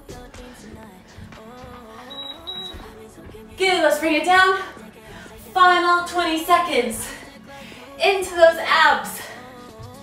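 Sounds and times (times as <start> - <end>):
background music with melody: 0.0 - 10.0
short high-pitched timer beeps: 2.1 - 2.8.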